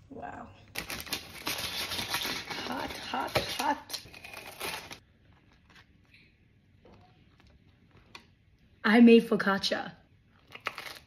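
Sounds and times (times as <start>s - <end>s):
parchment paper crinkling: 0.7s - 6.2s.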